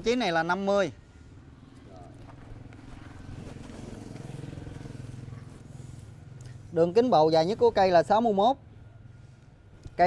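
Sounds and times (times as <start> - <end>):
vehicle engine humming: 1.0 - 10.0.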